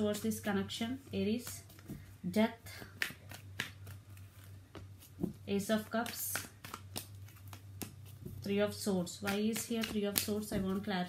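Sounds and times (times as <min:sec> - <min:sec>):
low steady hum: 0:00.0 - 0:11.0
cards shuffling and flicking: 0:02.8 - 0:10.9.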